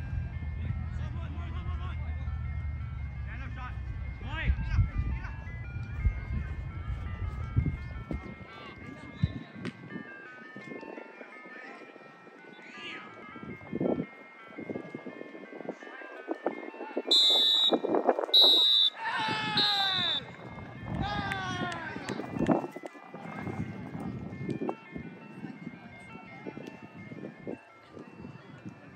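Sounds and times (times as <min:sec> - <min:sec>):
faint jingle tune: 0:00.0 - 0:18.2, 0:19.9 - 0:28.9
referee's whistle blasts: 0:17.1 - 0:20.3
players shouting: 0:18.4 - 0:23.6.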